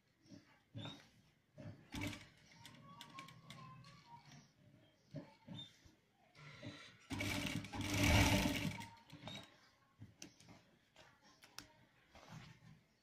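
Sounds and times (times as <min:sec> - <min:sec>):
sewing machine stitching: 0:01.6 - 0:04.5, 0:06.5 - 0:09.5.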